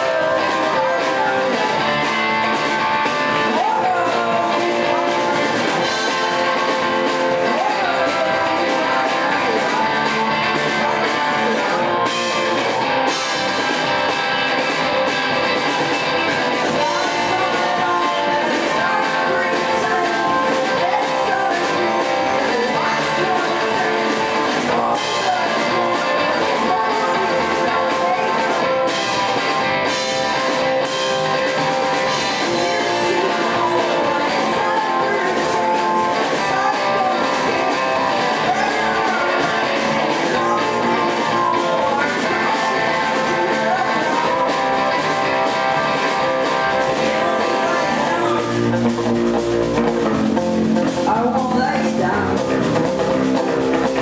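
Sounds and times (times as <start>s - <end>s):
person singing: 0.0s - 54.0s
strummed electric guitar: 0.0s - 54.0s.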